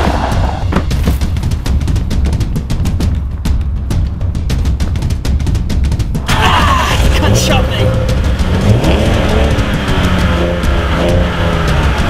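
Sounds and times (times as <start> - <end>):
car engine revving: 6.1 - 12.0
man groaning in pain: 6.2 - 7.8.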